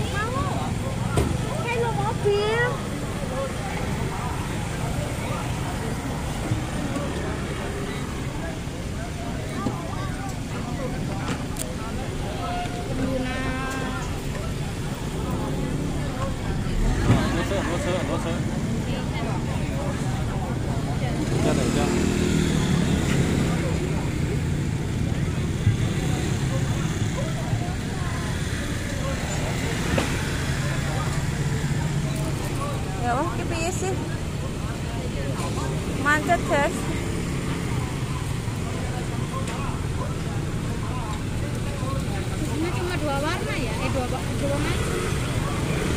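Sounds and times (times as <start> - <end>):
people's voices: 0.0 - 45.9
scooters and cars driving past: 0.0 - 45.9.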